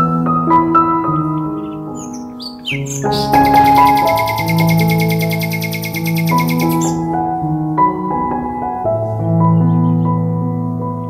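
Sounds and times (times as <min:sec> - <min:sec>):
soft piano background music: 0:00.0 - 0:11.0
short high chirps: 0:02.5 - 0:07.0.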